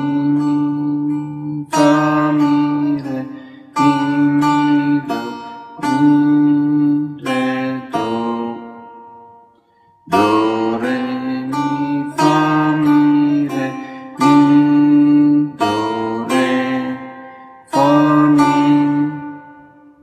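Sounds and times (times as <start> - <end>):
plucked lute notes: 0.0 - 20.0.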